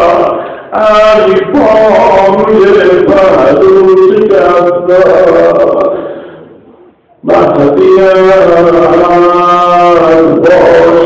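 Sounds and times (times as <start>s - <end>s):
man chanting: 0.0s - 6.1s, 7.2s - 11.0s.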